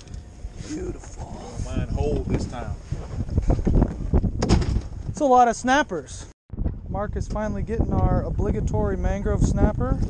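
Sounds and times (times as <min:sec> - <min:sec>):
wind buffeting microphone: 0:00.0 - 0:05.4, 0:06.5 - 0:10.0.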